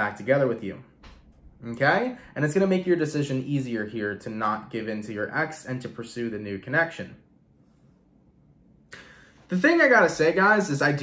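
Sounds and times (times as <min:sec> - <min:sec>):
man talking: 0:00.0 - 0:01.0, 0:01.6 - 0:07.2, 0:09.5 - 0:11.0
breath noise: 0:08.9 - 0:09.5.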